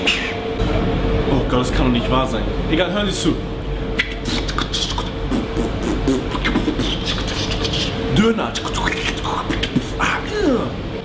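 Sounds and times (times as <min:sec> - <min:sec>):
man beatboxing: 0:04.0 - 0:10.8.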